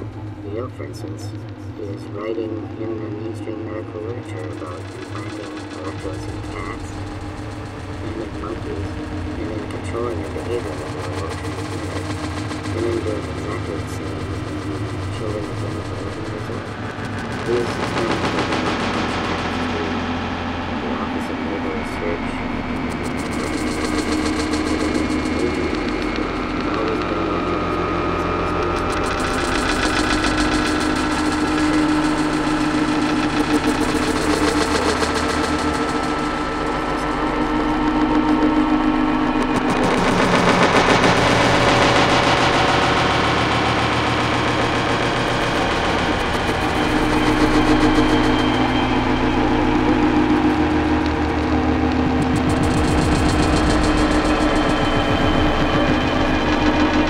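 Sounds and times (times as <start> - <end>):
harsh noise: 0.0 - 57.0
rumbling drones: 0.0 - 57.0
steady low hum: 0.0 - 57.0.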